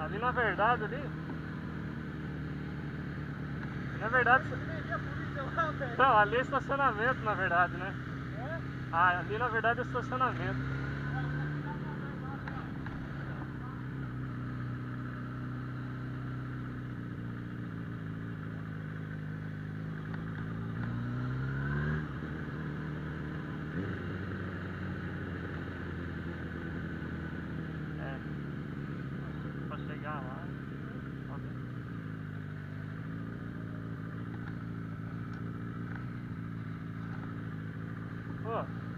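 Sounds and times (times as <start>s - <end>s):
motorcycle engine running: 0.0s - 38.9s.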